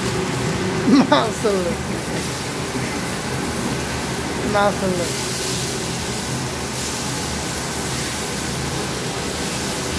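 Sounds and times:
chicken sizzling on a griddle: 0:00.0 - 0:09.9.

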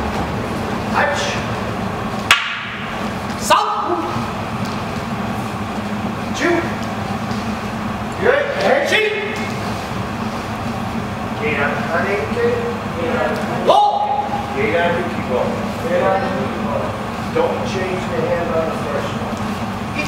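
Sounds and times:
low room hum: 0:00.0 - 0:20.0
sharp knocks: 0:02.3 - 0:03.0
man shouting: 0:03.4 - 0:04.1, 0:13.6 - 0:14.5.

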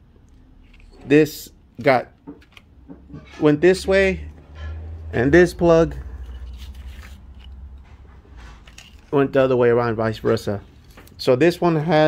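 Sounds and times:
plastic connectors rustling and clicking: 0:00.2 - 0:01.1, 0:01.7 - 0:02.8, 0:05.9 - 0:09.5.

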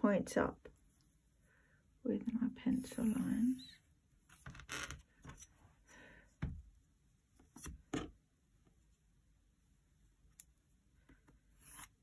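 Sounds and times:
ruler scraping paper: 0:11.6 - 0:12.0.

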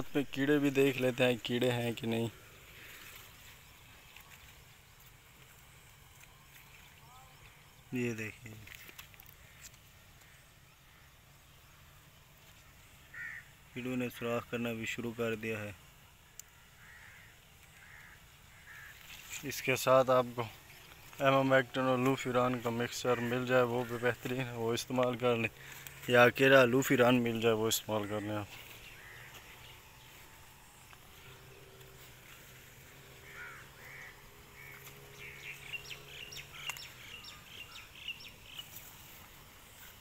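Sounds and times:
faint bird calls: 0:00.0 - 0:15.0, 0:15.8 - 0:40.0.

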